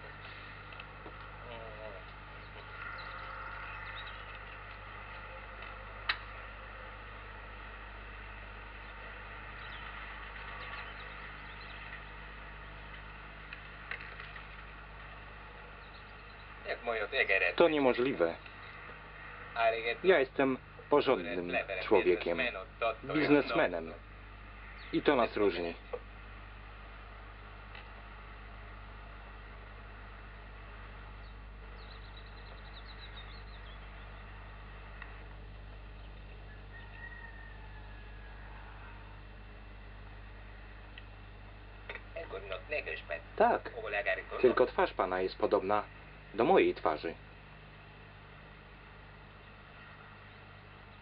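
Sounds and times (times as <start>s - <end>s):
tape hiss: 0.0s - 36.8s, 37.7s - 51.0s
low electrical hum: 0.0s - 51.0s
small bird twittering: 2.0s - 4.5s, 9.6s - 9.9s, 10.6s - 12.9s, 15.8s - 16.6s, 31.2s - 34.2s.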